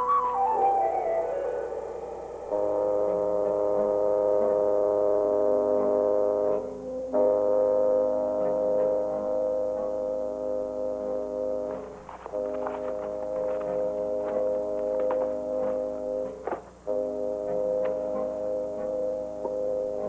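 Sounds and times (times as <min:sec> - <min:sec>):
long held chord: 0:00.0 - 0:20.0.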